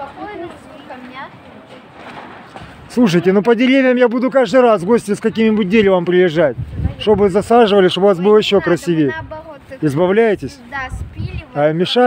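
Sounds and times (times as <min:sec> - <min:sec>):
low outdoor noise: 0:00.0 - 0:12.0.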